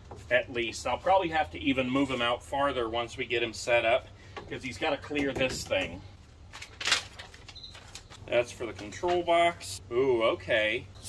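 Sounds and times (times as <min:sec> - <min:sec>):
packaging rustling: 0:06.3 - 0:09.4.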